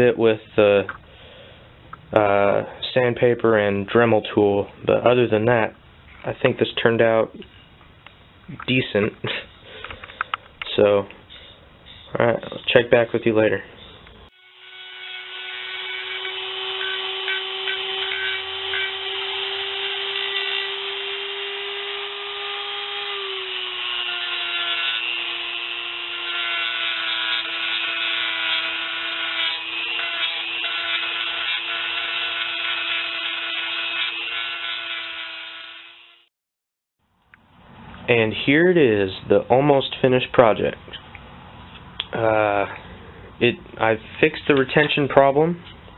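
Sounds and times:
rotary tool whining: 14.3s - 36.3s.

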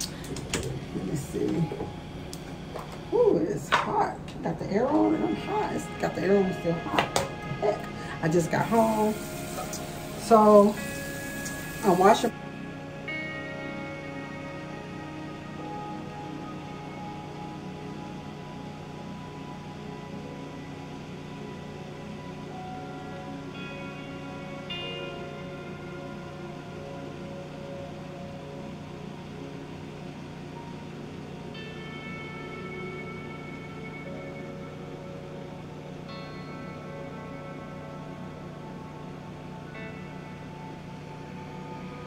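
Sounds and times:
slow held chords music: 0.0s - 42.0s.

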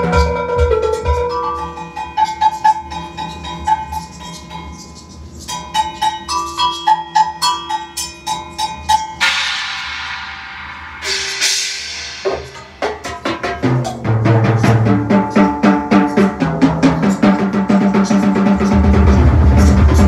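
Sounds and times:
bell-like percussion strokes: 0.0s - 20.0s
cymbal crashes: 8.3s - 20.0s.

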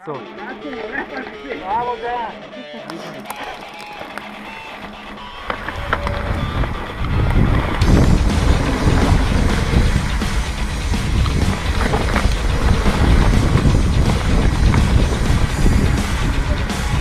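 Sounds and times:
bike tyres rumbling on dirt trail: 3.4s - 17.0s
wind buffeting microphone: 5.6s - 17.0s.

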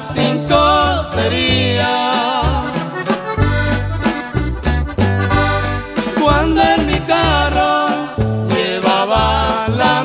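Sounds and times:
accordion melody: 0.0s - 10.0s
steady bass notes: 0.0s - 10.0s.

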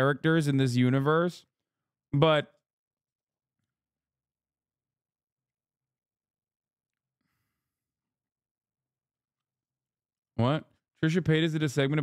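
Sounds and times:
faint exhaled breath: 7.2s - 7.8s.

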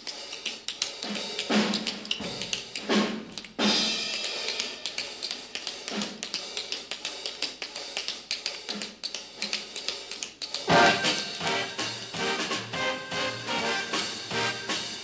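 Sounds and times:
drum kit with cymbals: 0.1s - 6.6s, 10.6s - 15.0s
swing band music: 0.2s - 8.2s, 8.8s - 15.0s.

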